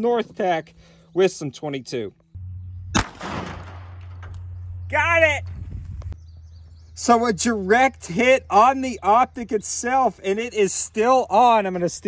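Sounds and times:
gunshot crack with echo: 0:02.9 - 0:04.2.

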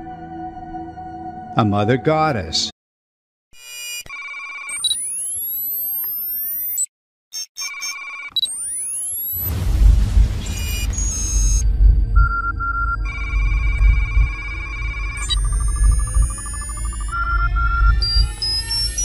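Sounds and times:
synthetic beeping tones: 0:03.6 - 0:09.6, 0:10.4 - 0:19.0
rising whistle-like sweeps: 0:08.5 - 0:19.0
deep low rumble: 0:09.4 - 0:19.0.

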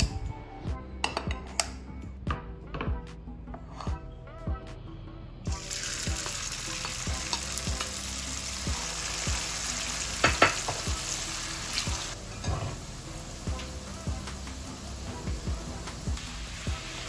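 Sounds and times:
noodles sizzling in hot oil: 0:05.5 - 0:17.0.

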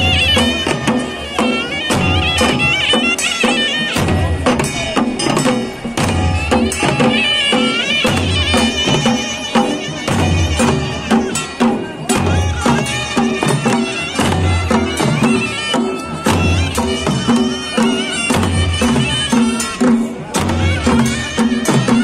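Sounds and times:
drums beating: 0:00.0 - 0:22.0
reedy wind instrument melody: 0:00.0 - 0:22.0.

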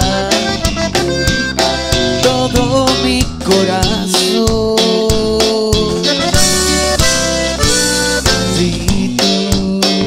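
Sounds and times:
button accordion melody: 0:00.0 - 0:04.3, 0:05.6 - 0:09.0
conjunto band playing: 0:00.0 - 0:10.0
drum kit beat: 0:00.0 - 0:10.0
guitar: 0:00.0 - 0:10.0.

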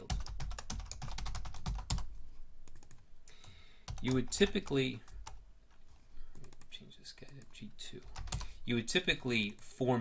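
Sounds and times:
typing on keyboard: 0:00.0 - 0:02.1, 0:02.7 - 0:03.0, 0:03.9 - 0:05.4, 0:06.3 - 0:08.5.

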